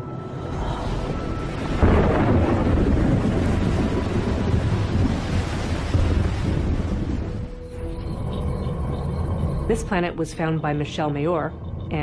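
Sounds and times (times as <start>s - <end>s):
thunder clap and rumble: 0.8s - 10.2s.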